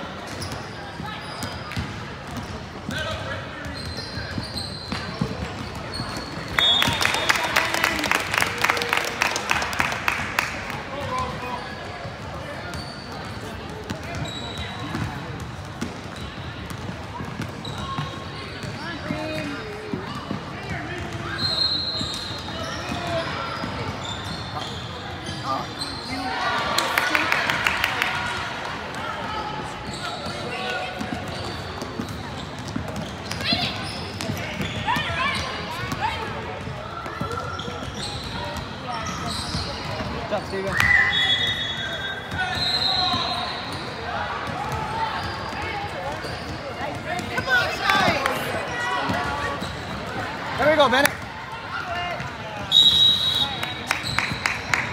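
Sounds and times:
spectators' voices: 0:00.0 - 0:54.9
basketball bouncing on court: 0:01.3 - 0:07.0, 0:12.1 - 0:24.8, 0:28.9 - 0:40.5.

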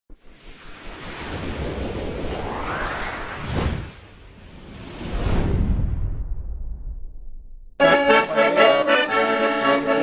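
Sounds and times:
whoosh with deep rumble: 0:00.1 - 0:07.8.

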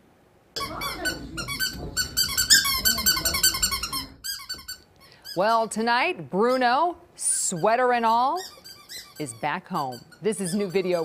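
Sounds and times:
squeaky dog toy squeaking: 0:00.6 - 0:05.8, 0:06.4 - 0:11.0.

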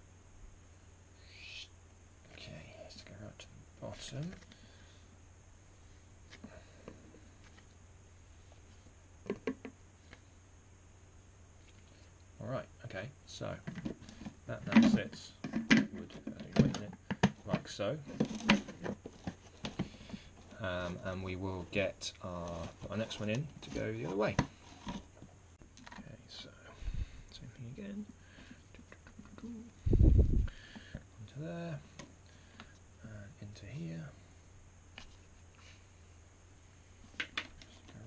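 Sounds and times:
low steady hum: 0:00.0 - 0:38.0
plastic jars clicking and knocking: 0:09.2 - 0:09.8.

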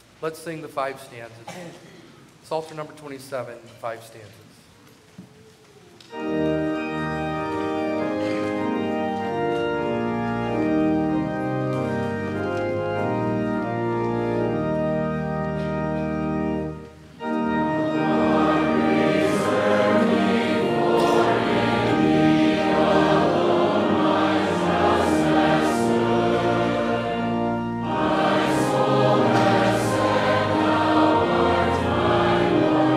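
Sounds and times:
church organ chords: 0:06.1 - 0:32.9
congregation singing: 0:06.1 - 0:32.9.

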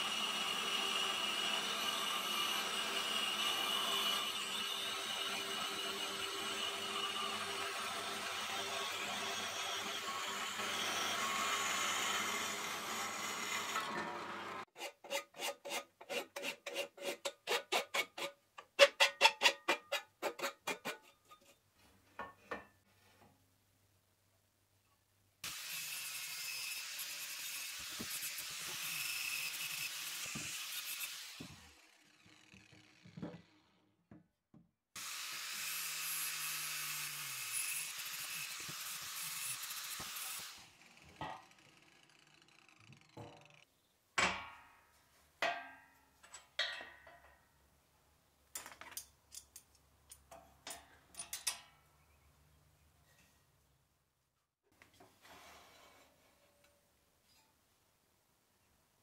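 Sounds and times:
angle grinder grinding steel: 0:00.0 - 0:18.3, 0:25.5 - 0:33.1, 0:35.0 - 0:43.6
metal bandsaw cutting steel: 0:00.0 - 0:18.3, 0:25.5 - 0:32.3, 0:35.0 - 0:43.1.

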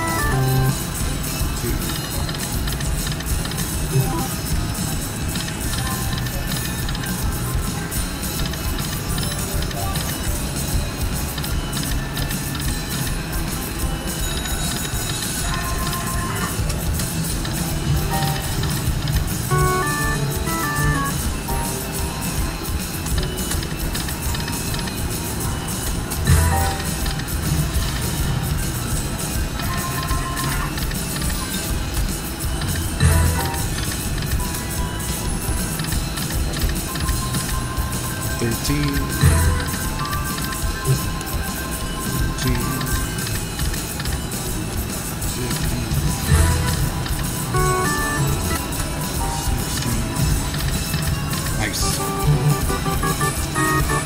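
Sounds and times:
busy casino din: 0:00.0 - 0:54.0
slot machine jingles: 0:00.0 - 0:54.0.

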